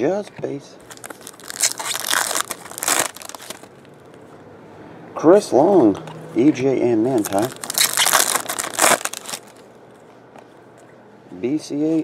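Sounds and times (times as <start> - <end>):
foil wrapper tearing and crinkling: 0.9 - 3.7, 7.2 - 9.6.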